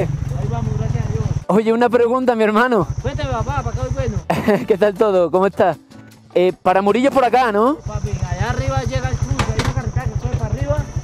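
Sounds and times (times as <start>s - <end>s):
motorcycle engine idling: 0.0s - 1.6s, 2.4s - 4.7s, 7.2s - 11.0s
man talking: 0.0s - 11.0s
sharp clicks: 8.4s - 10.4s.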